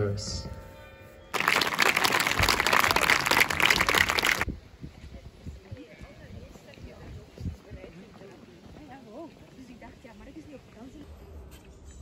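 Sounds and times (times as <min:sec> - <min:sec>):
audience applauding: 0:01.3 - 0:04.5.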